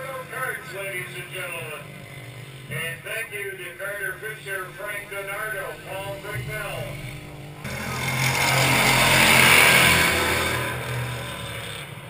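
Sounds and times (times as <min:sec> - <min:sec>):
race cars passing by: 0:00.0 - 0:12.0.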